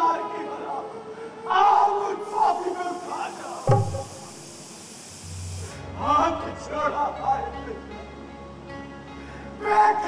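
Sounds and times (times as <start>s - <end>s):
steady high hiss: 1.3s - 6.1s.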